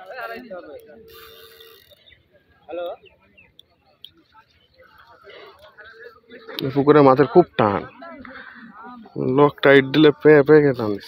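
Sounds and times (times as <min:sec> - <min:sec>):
fishing reel whirring: 0:00.0 - 0:02.1.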